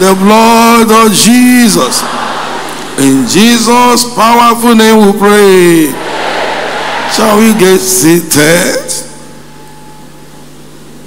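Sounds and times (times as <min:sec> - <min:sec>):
hall ambience hum and hiss: 0:00.0 - 0:11.0
congregation shifting in seats: 0:01.7 - 0:09.9.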